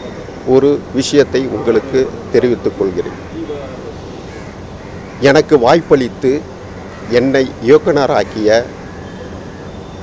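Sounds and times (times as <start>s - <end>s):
faint bird calls: 0.0s - 10.0s
outdoor background noise: 0.0s - 10.0s.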